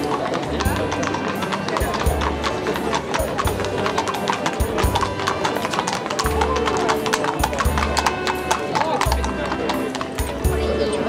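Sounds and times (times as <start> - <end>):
crowd voices: 0.0 - 11.0
horse hooves clip-clopping on tarmac: 0.0 - 11.0
music: 0.0 - 11.0.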